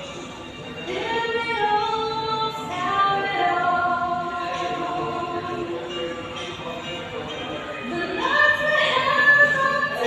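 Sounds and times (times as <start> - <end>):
woman singing a slow ballad: 0.9 - 5.7, 7.9 - 10.0.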